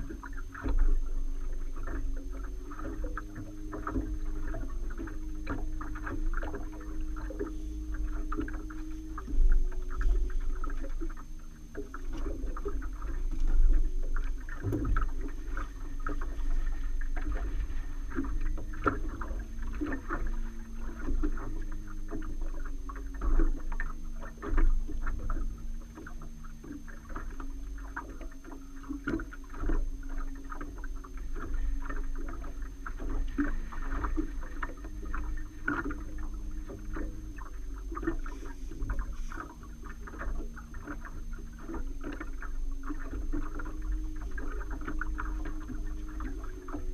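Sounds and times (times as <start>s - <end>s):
low steady hum: 0.0s - 46.9s
waves slapping against hull: 0.0s - 46.9s
wind rumble on microphone: 0.0s - 46.9s.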